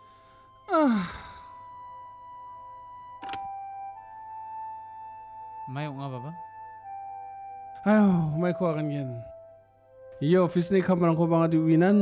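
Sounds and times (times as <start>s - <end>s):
soft background music: 0.0s - 12.0s
man sighing heavily: 0.7s - 1.6s.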